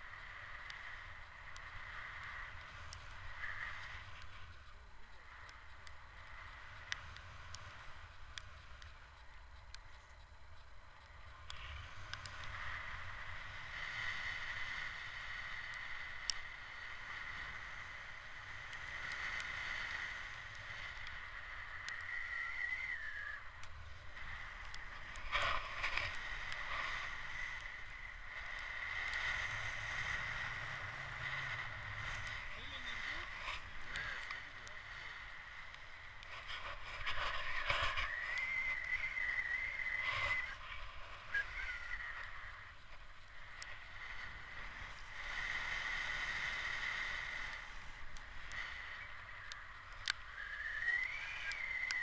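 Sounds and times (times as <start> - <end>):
high whistling tone: 21.4 - 25.1, 35.4 - 42.9, 48.8 - 52.0.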